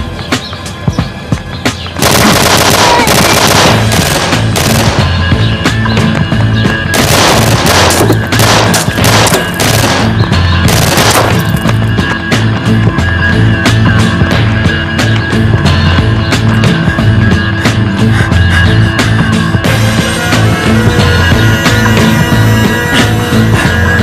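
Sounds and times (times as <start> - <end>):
dramatic music with pulsing bass: 0.0 - 24.0
automatic gunfire: 2.0 - 5.2, 7.0 - 11.6.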